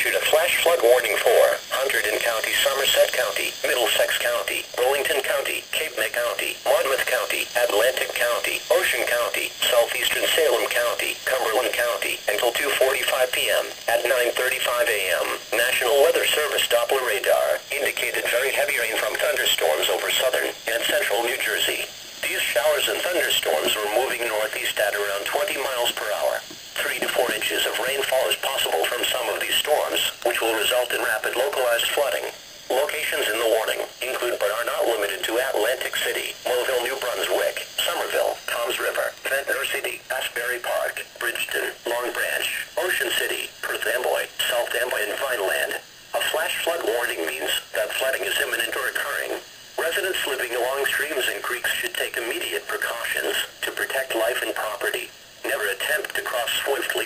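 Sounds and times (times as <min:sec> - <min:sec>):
steady hiss: 0:00.0 - 0:57.0
voice through small radio speaker: 0:00.0 - 0:57.0.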